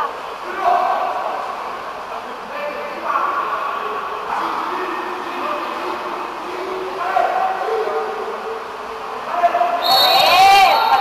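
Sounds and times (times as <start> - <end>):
people shouting and calling: 9.8 - 11.0.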